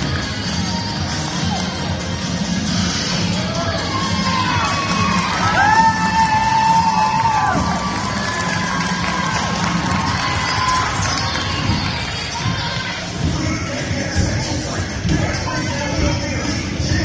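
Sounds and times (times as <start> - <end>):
crowd cheering and shouting: 0.0 - 16.4.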